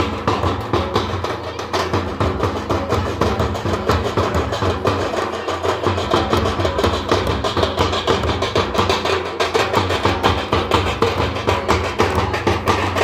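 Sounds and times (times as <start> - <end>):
bass drum beaten with stick: 0.0 - 13.0
hand drum: 0.0 - 13.0.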